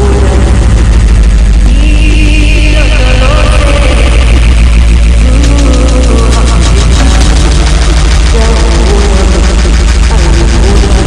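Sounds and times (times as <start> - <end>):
indistinct voices: 0.0 - 11.0
loud steady low hum: 0.0 - 11.0.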